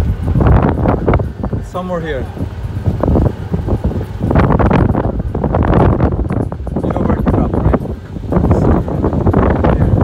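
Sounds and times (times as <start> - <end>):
golf cart rumble: 0.0 - 10.0
wind buffeting microphone: 0.0 - 10.0.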